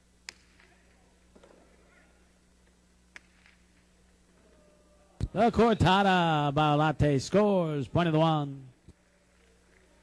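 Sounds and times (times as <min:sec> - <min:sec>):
hard ball cracking: 0:00.3 - 0:00.7.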